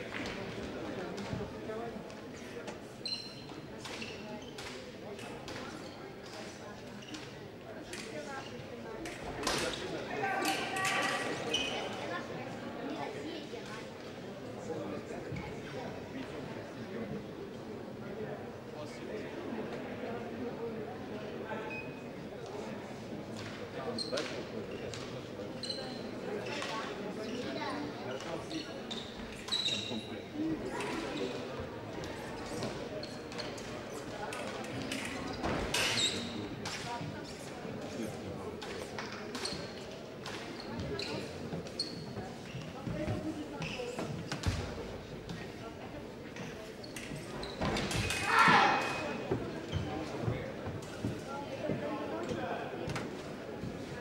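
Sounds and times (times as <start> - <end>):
murmur of voices: 0.0 - 54.0
shoe soles squeaking: 3.0 - 4.6, 28.9 - 30.1, 40.5 - 42.7, 46.8 - 50.1.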